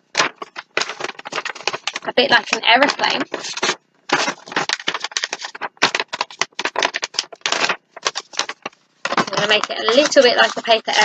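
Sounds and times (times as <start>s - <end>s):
paper crackling and rustling: 0.0s - 11.0s.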